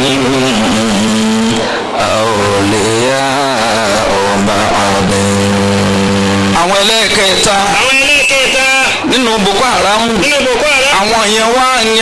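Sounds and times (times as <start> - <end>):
man chanting through loudspeaker: 0.0 - 12.0.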